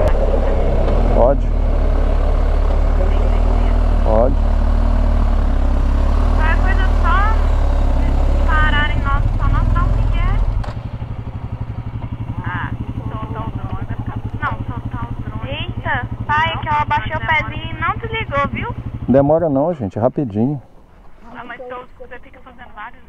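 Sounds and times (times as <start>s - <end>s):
motorcycle engine idling: 0.0s - 22.9s
wind and road noise: 0.0s - 23.0s.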